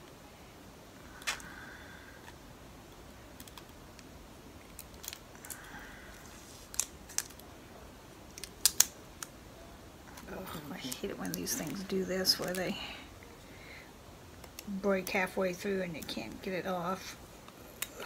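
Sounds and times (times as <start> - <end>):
plastic wrapping crinkling: 3.2 - 7.6, 8.2 - 9.4, 10.1 - 13.0
small plastic clicks: 3.4 - 5.6, 8.3 - 9.4.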